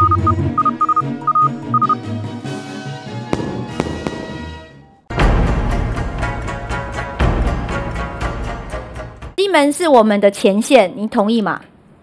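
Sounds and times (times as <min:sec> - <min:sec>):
sharp percussive hits: 0:03.4 - 0:08.0.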